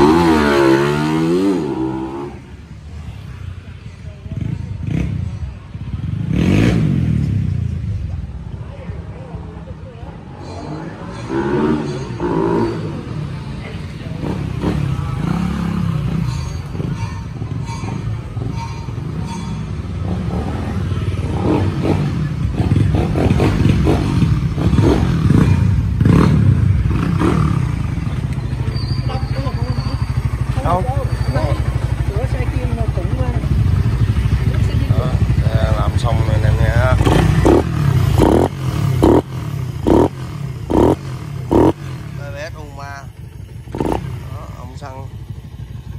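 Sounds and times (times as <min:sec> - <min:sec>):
motorcycle engine: 0:00.0 - 0:45.9.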